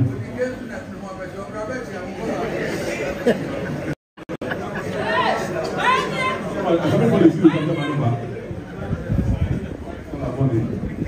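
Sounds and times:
people talking in a hall: 0.0 - 11.0.

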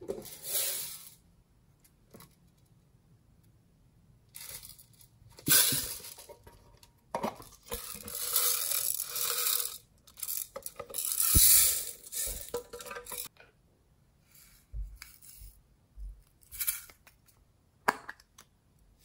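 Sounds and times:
beads rattling in tin box: 4.4 - 6.4, 7.5 - 13.3, 16.4 - 17.0
beads pouring into glass dish: 7.8 - 12.5.

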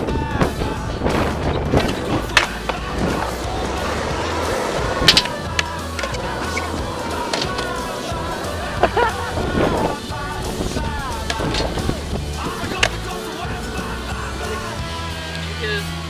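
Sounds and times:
music: 0.0 - 16.0
skateboard wheels rolling on concrete: 0.0 - 16.0.

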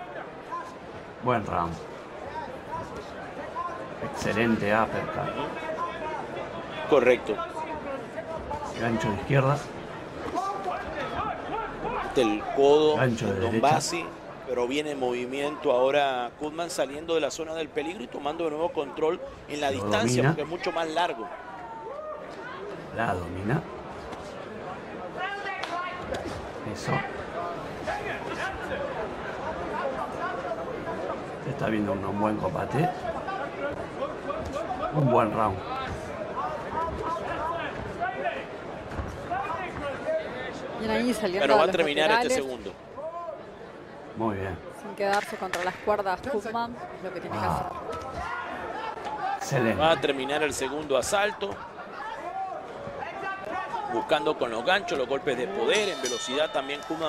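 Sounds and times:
arena background noise: 0.0 - 57.0
man talking: 11.8 - 21.2, 26.6 - 27.1, 34.9 - 35.6.

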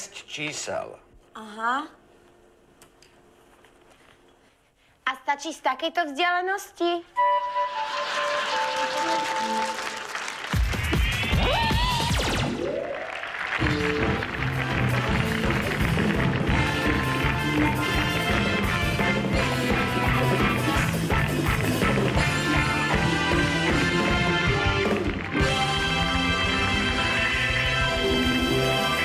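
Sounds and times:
studio audience applauding: 7.2 - 29.0
music with steady beat: 13.6 - 29.0.

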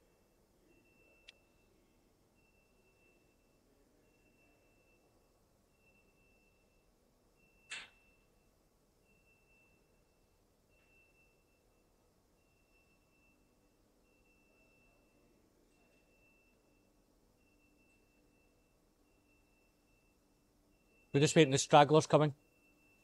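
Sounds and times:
faint pulsing high tone: 0.0 - 23.0.

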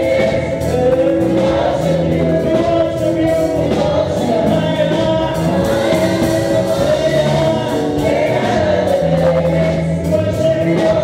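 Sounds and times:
backing singers: 0.0 - 11.0
band accompaniment: 0.0 - 11.0
man singing into microphone: 0.0 - 11.0.

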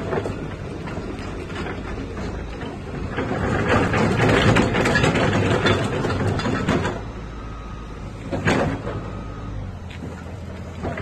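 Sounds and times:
excavator diesel engine rumbling: 0.0 - 11.0.

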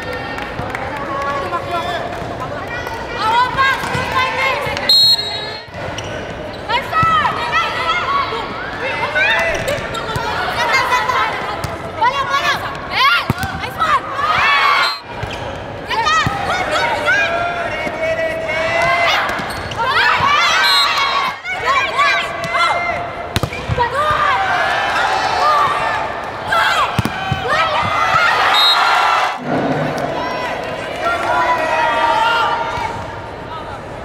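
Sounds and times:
referee's whistle: 4.9 - 6.2, 14.7 - 15.5, 20.4 - 21.2, 28.4 - 29.1
sneakers squeaking on court: 5.7 - 7.2, 15.1 - 15.7, 19.3 - 19.9
volleyball strike: 13.2 - 13.8, 23.3 - 24.2, 26.8 - 28.4.

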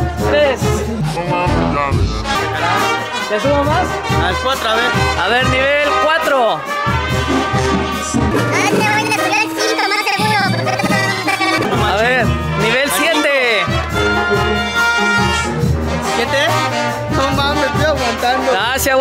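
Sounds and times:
brass horns playing: 0.1 - 9.7, 10.8 - 18.9.

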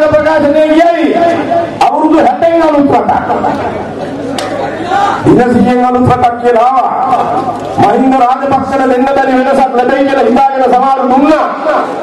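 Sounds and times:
crowd chatter: 3.2 - 5.4, 11.3 - 12.0.

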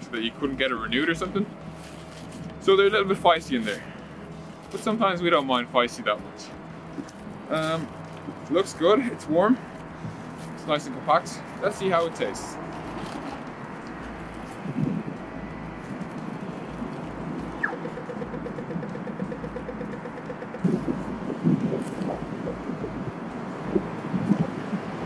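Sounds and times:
street traffic noise: 0.0 - 25.0
rapid even ticks: 16.8 - 25.0.

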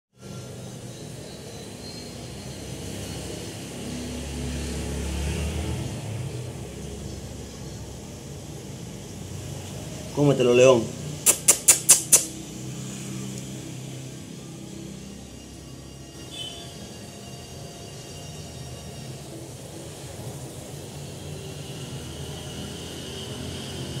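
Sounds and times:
sharp click: 11.2 - 12.4.

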